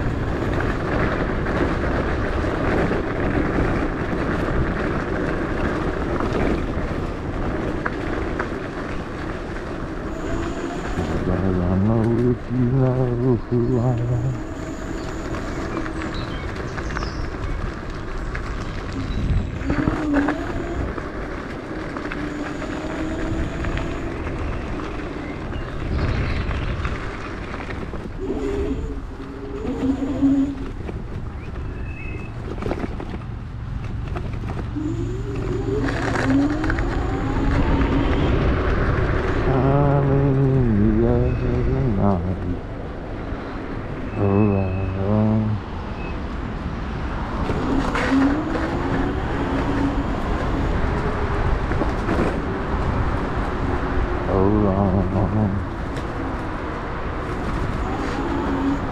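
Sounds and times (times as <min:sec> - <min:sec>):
tyre rumble over path: 0:00.0 - 0:41.5, 0:45.9 - 0:58.9
wind buffeting microphone: 0:00.0 - 0:58.9.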